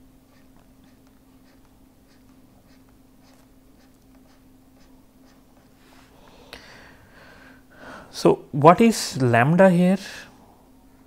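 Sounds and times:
low electrical hum: 0:00.0 - 0:11.0
stylus scratching on pen tablet: 0:00.3 - 0:05.8.

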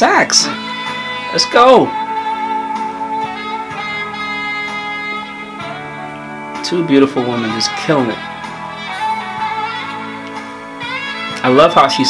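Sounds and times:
soft band accompaniment: 0:00.0 - 0:12.0
alto saxophone long notes: 0:00.5 - 0:11.4.

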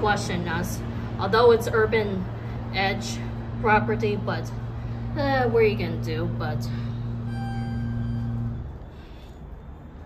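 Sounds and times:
elevator machinery humming: 0:00.0 - 0:10.0.

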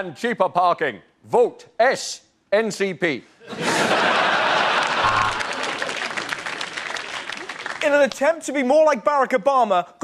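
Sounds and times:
audience applauding: 0:04.2 - 0:08.2.

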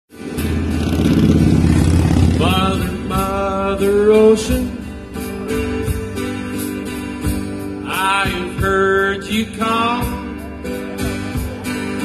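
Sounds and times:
live band playing: 0:00.1 - 0:12.0
heavy low rumble: 0:00.4 - 0:06.4.

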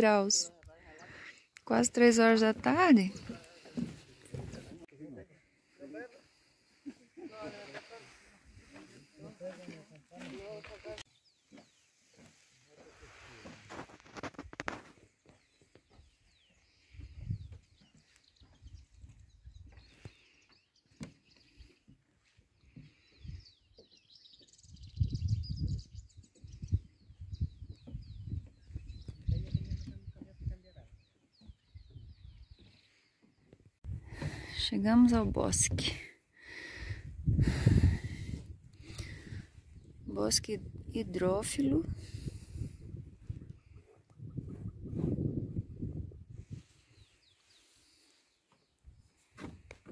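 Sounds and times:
footsteps on wooden boardwalk: 0:02.2 - 0:04.8, 0:08.2 - 0:13.7, 0:14.8 - 0:24.5, 0:29.9 - 0:34.5.

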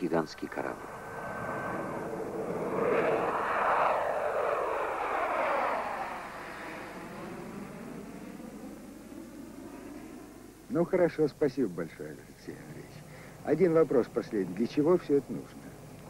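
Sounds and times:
jet aircraft flying past: 0:00.0 - 0:16.0.

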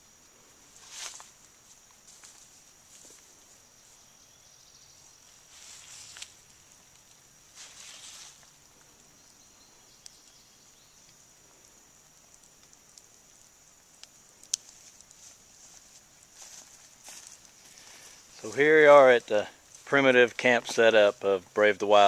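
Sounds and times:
insect chorus: 0:00.0 - 0:22.0
rustling noise: 0:00.7 - 0:03.5, 0:05.4 - 0:06.5, 0:07.5 - 0:08.6.

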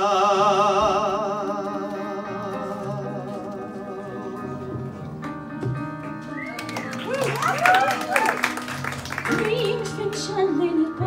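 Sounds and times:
piano chords: 0:00.0 - 0:11.0
audience clapping and whooping: 0:06.3 - 0:10.2.

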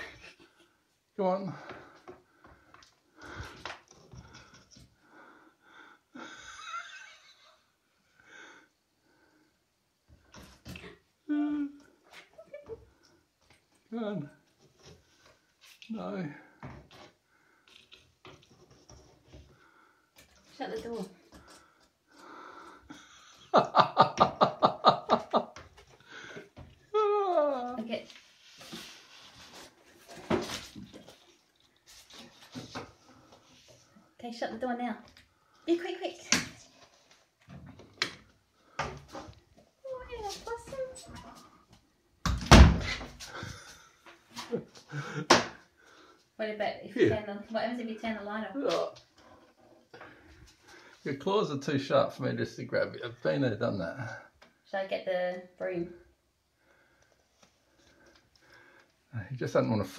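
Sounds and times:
person laughing: 0:06.2 - 0:07.7.

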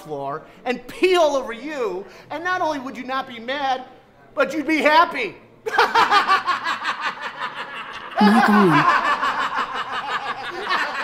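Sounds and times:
men laughing: 0:05.7 - 0:11.0.

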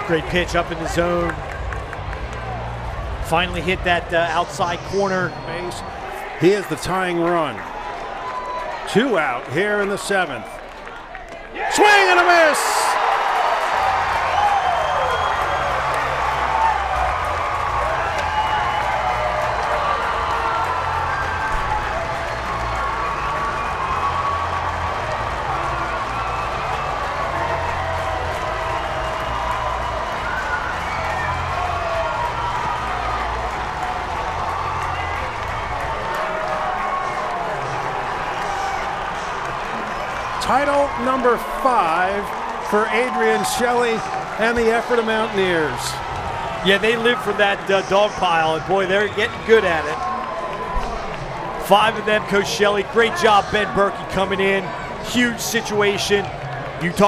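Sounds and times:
crowd cheering and applauding: 0:00.0 - 0:57.0
voices shouting: 0:11.5 - 0:14.8.

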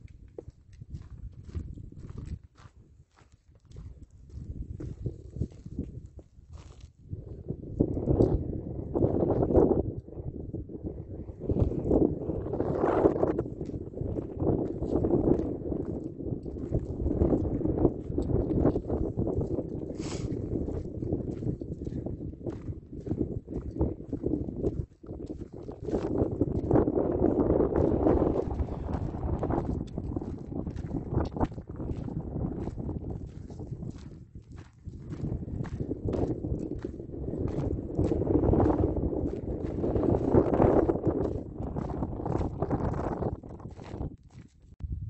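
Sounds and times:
footsteps crunching on gravel: 0:00.0 - 0:07.0, 0:12.6 - 0:44.6
wind rumbling on microphone: 0:00.0 - 0:45.0.

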